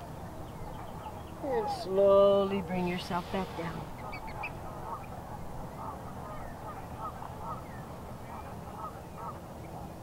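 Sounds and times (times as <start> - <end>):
low background noise: 0.0 - 10.0
waterfowl honking: 3.9 - 7.7, 8.3 - 9.4.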